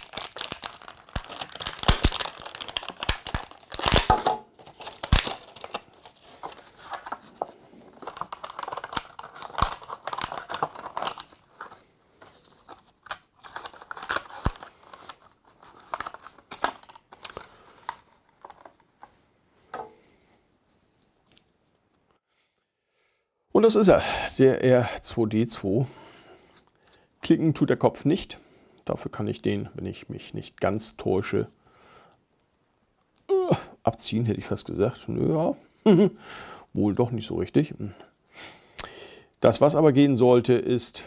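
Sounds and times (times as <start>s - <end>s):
plastic packaging crinkling: 0.0s - 19.1s.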